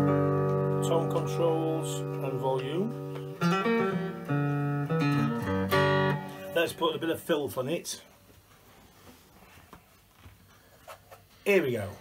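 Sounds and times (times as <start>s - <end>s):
rustling and handling noise: 6.5s - 12.0s.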